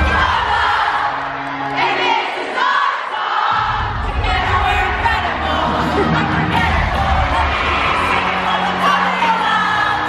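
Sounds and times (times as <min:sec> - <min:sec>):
loud music: 0:00.0 - 0:02.2, 0:03.5 - 0:10.0
girls screaming and cheering: 0:05.5 - 0:10.0.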